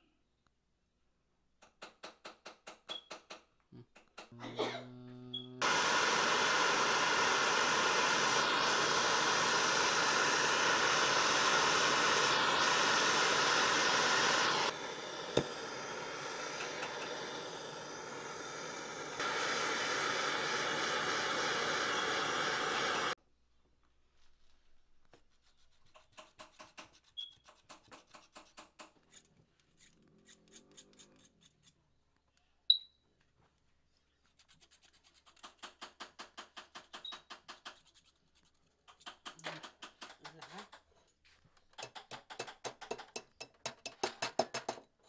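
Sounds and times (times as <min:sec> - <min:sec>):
gas torch flame hissing: 0:05.3 - 0:23.2.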